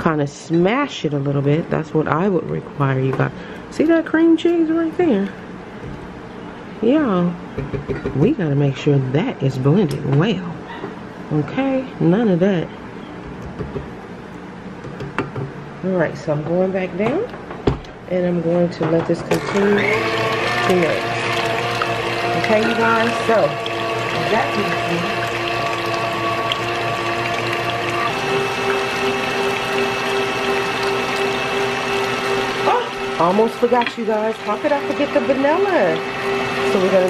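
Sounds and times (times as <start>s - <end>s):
utensils knocking on steel bowl: 7.6s - 8.3s, 22.4s - 23.4s, 33.7s - 34.0s
stand mixer motor humming: 19.3s - 37.0s.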